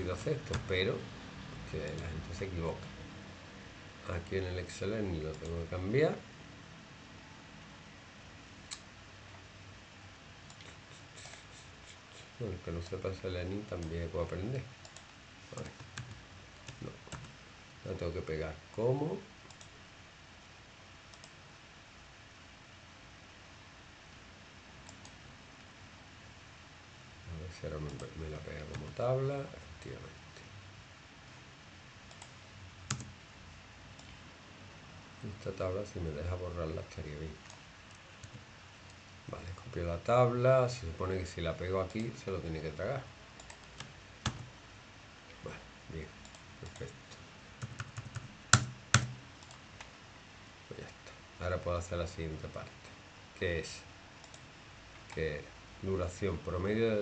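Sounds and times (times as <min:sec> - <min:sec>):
low room hiss: 0:00.0 - 0:57.0
computer mouse clicks: 0:14.8 - 0:17.4, 0:19.4 - 0:19.8, 0:21.1 - 0:21.4, 0:24.8 - 0:25.2, 0:32.1 - 0:33.2, 0:34.0 - 0:34.2, 0:37.4 - 0:39.4, 0:43.4 - 0:44.5, 0:46.2 - 0:49.9, 0:54.2 - 0:55.2
sharp keyboard strikes: 0:47.6 - 0:49.2.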